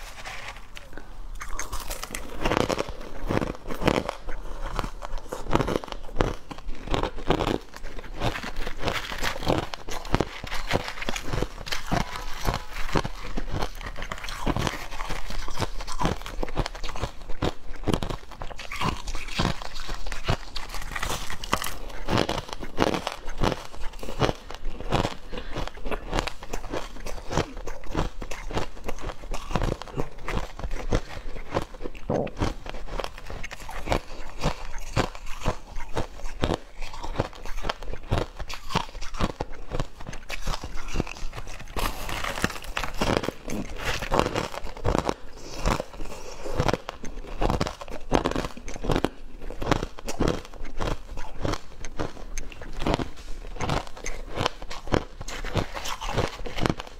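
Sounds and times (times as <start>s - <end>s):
ice crackling scooped from bowl: 0.0s - 2.8s
crushed ice crunching in teeth: 0.0s - 56.9s.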